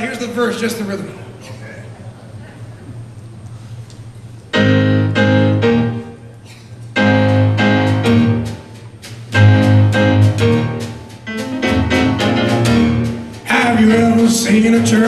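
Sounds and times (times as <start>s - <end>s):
jazz piano chord phrases: 4.5s - 15.0s.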